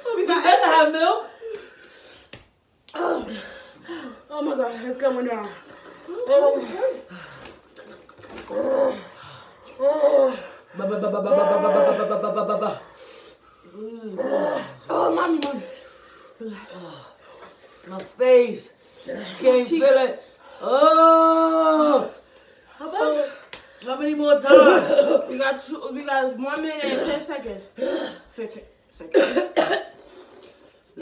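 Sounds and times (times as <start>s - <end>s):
woman moaning: 2.9s - 4.6s, 6.0s - 7.3s, 8.5s - 13.0s, 13.7s - 15.7s, 20.5s - 22.2s
women groaning and crying: 2.9s - 7.5s, 8.4s - 12.9s, 13.7s - 15.8s, 20.6s - 22.2s.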